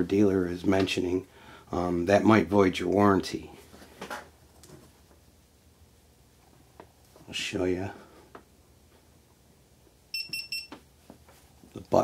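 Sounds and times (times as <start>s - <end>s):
short electronic beeps: 10.1s - 10.8s.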